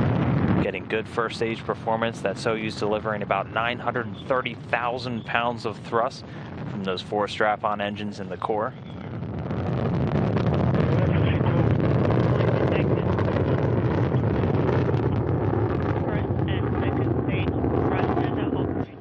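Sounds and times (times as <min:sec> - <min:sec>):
rocket engines deep rumble: 0:00.0 - 0:19.0.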